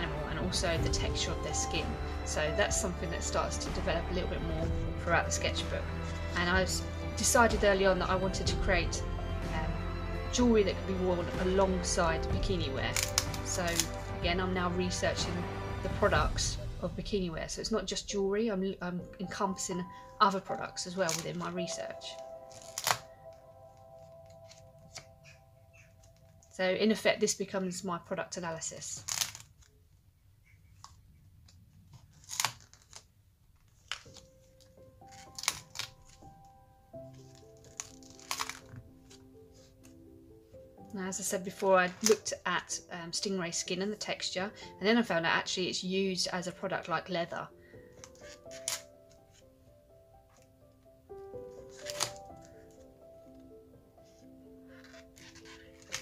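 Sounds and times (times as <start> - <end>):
soft background music: 0.0 - 29.8, 31.7 - 56.0
paper page rustling: 12.9 - 14.2, 20.3 - 26.6, 28.8 - 29.7, 30.8 - 36.4, 37.0 - 40.0, 47.9 - 49.5, 51.5 - 53.4, 54.0 - 56.0.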